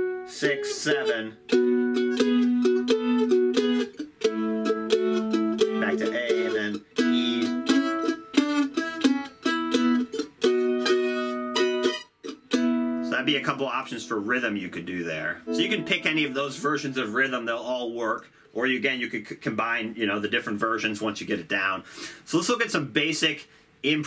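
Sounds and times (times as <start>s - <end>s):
mandolin strummed in blues shuffle: 0.0s - 18.1s.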